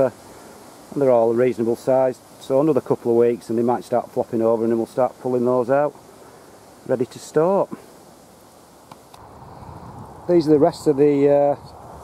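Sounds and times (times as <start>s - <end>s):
wind rumble on microphone: 9.2s - 12.0s.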